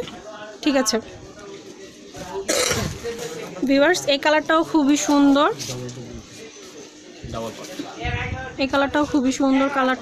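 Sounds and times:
faint background talk: 0.0 - 10.0
loud cough: 2.5 - 2.9.

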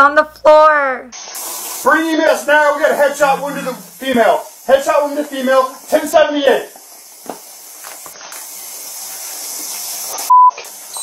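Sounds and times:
steady hiss: 1.1 - 11.0
censor bleep: 10.3 - 11.0.

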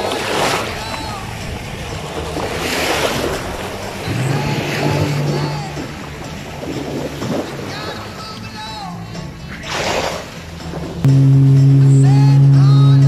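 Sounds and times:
small waves washing onto shore: 0.0 - 11.1
background music: 0.0 - 13.0
low steady hum: 10.8 - 13.0.

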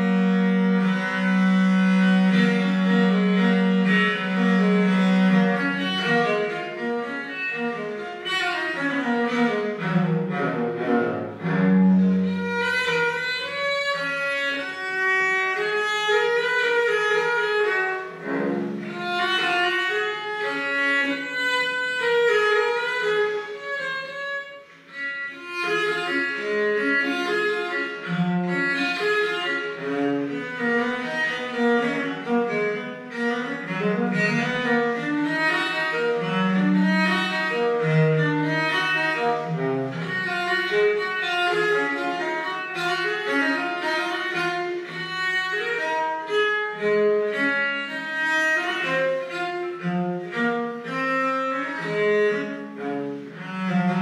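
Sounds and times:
bowed viola da gamba: 0.0 - 54.0.

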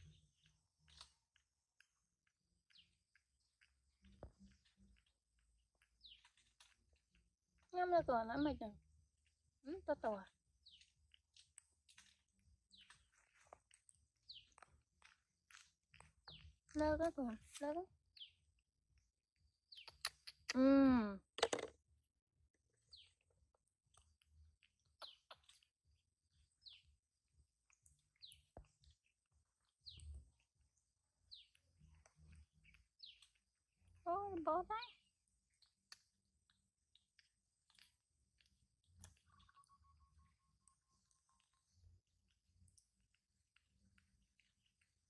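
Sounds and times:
monkey chewing fruit clicks: 0.0 - 7.7, 10.4 - 17.6, 19.7 - 20.6, 23.1 - 25.8, 31.2 - 39.7
falling bird chirp: 25.0 - 25.6
faint steady high tone: 39.2 - 42.0.

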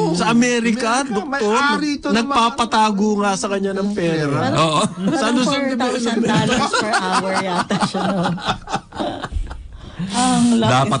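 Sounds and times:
people laughing: 4.5 - 9.6.

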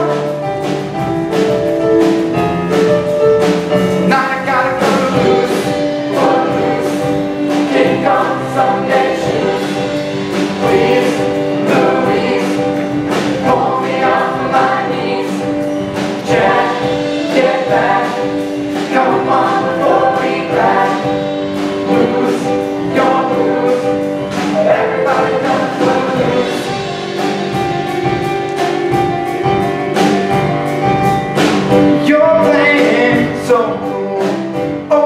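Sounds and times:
instrumental accompaniment with beat: 0.0 - 35.0
group singing upbeat song: 3.9 - 27.4, 32.0 - 35.0.

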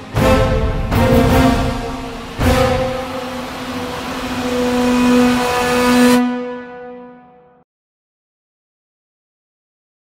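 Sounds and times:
hissing swell: 0.0 - 7.0
long low music note: 0.0 - 7.6.

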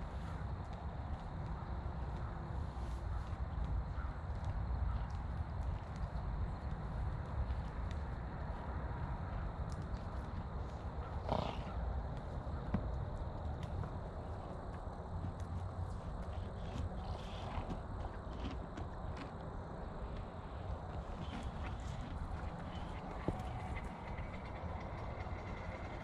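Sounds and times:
horse snorting: 11.1 - 11.8, 16.4 - 18.6, 21.0 - 26.0.

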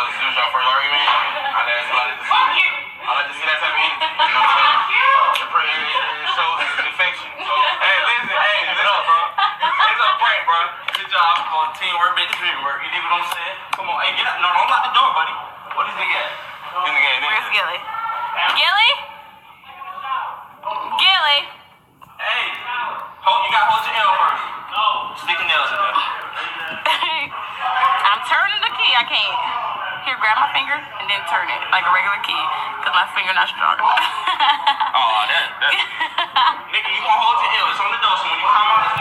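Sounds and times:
several people talking: 0.0 - 39.0.

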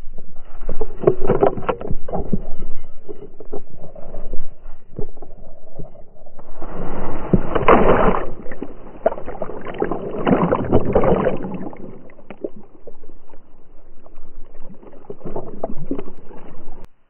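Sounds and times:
splashing water: 0.6 - 16.9.

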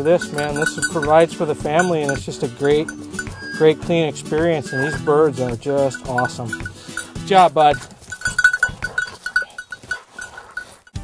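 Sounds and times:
dog collar bell jingling: 0.0 - 11.0
faint rustling: 5.9 - 11.0.

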